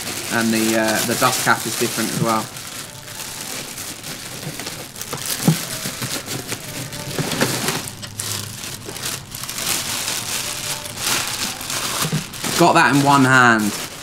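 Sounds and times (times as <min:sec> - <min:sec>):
plastic bag crinkling: 0:00.0 - 0:14.0.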